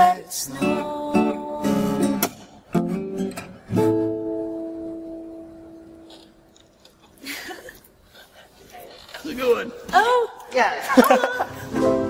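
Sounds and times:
acoustic guitar strumming: 0.0s - 6.5s.

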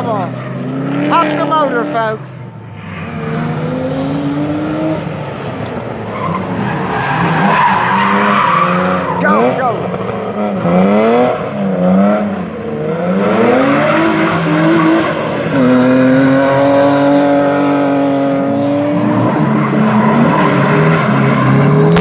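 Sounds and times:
car engine revving: 0.0s - 22.0s
tyres squealing: 6.0s - 9.9s, 19.1s - 21.8s.

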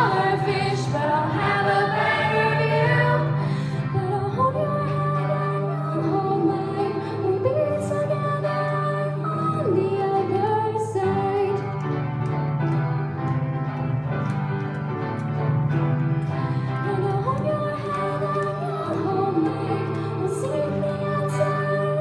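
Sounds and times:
choir singing: 0.0s - 3.6s.

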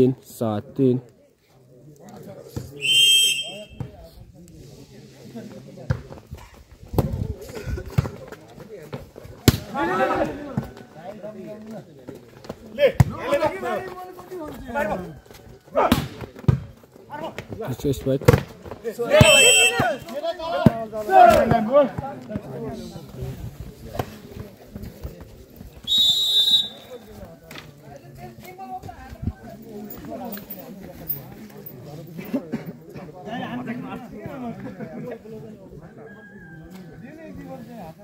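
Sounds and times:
referee's whistle blast: 2.8s - 3.9s, 19.1s - 20.0s, 25.9s - 27.0s
players shouting: 19.0s - 22.0s.

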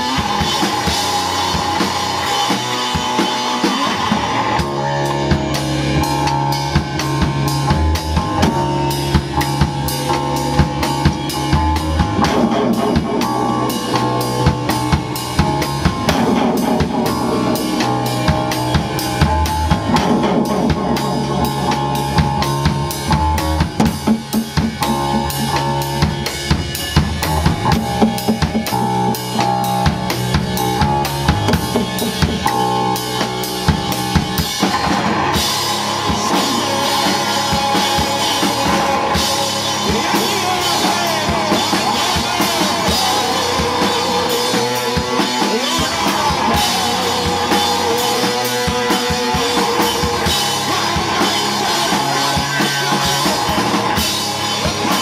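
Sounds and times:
electric guitar lines: 0.0s - 55.0s
hard-hit drum beat: 0.0s - 55.0s
punk rock band playing: 0.0s - 55.0s.

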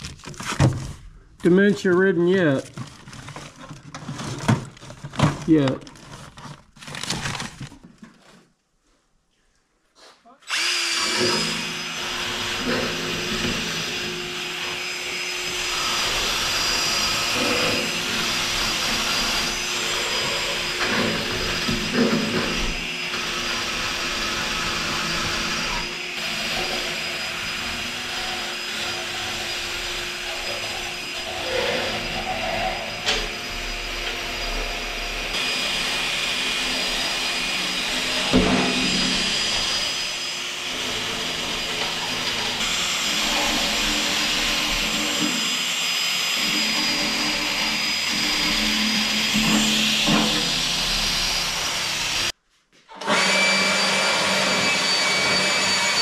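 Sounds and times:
angle grinder grinding steel: 10.5s - 52.4s, 53.0s - 56.0s.

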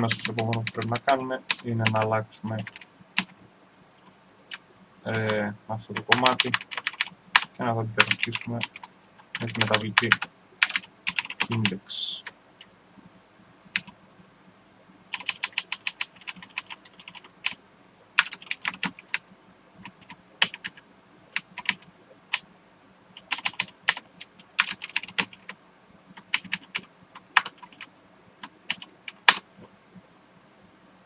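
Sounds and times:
computer keyboard typing: 0.0s - 3.3s, 6.0s - 12.3s, 13.7s - 13.9s, 15.1s - 17.6s, 18.2s - 19.2s, 19.8s - 20.8s, 21.4s - 22.4s, 23.2s - 29.6s.

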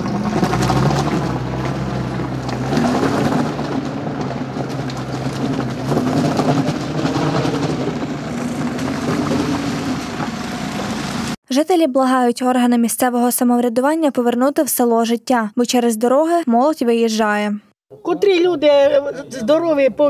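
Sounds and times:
car engine pulling under load: 0.0s - 11.4s
tyres crunching over stones: 0.1s - 11.2s.

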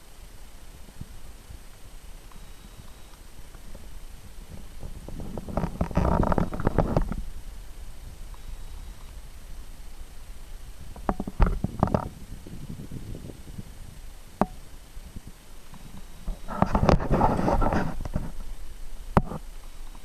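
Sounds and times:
hull scraping through reeds: 4.4s - 9.3s, 15.8s - 18.6s.

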